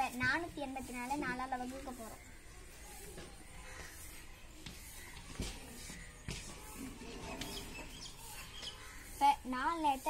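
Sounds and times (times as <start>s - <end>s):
faint bird chirps: 0.0s - 10.0s.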